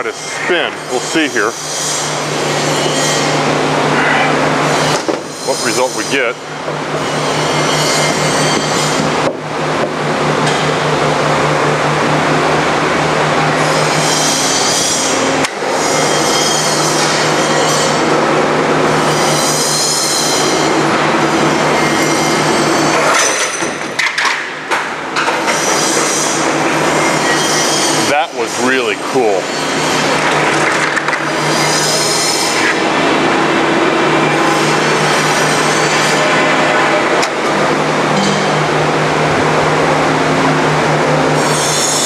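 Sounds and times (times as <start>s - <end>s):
band saw motor hum: 0.0s - 23.2s, 25.0s - 42.0s.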